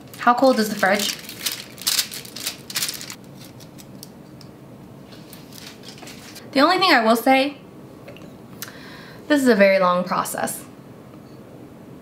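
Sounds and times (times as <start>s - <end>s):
aluminium foil crinkling: 0.0s - 4.2s, 5.2s - 6.4s.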